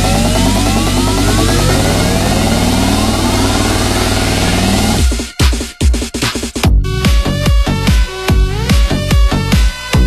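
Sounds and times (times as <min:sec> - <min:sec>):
synth sweeps rising in pitch: 0:00.0 - 0:05.1
steady bass line: 0:00.0 - 0:10.0.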